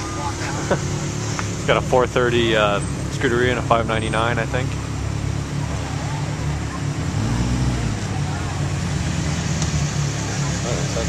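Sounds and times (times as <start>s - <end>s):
sports car engines rumbling: 0.0s - 11.0s.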